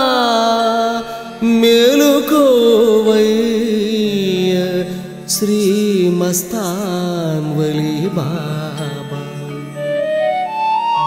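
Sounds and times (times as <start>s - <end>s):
person singing devotional hymn: 0.0s - 10.1s
instrumental melody: 0.0s - 11.0s.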